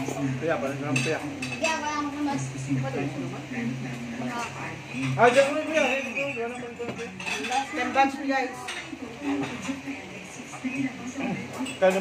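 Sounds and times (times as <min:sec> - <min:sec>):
cutlery clinking on plates: 0:00.0 - 0:01.8, 0:04.2 - 0:12.0.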